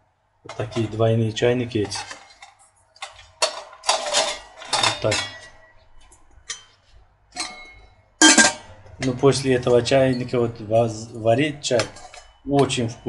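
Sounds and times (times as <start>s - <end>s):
metal teapots clinking: 0.5s - 1.0s, 1.6s - 5.7s, 6.4s - 13.0s.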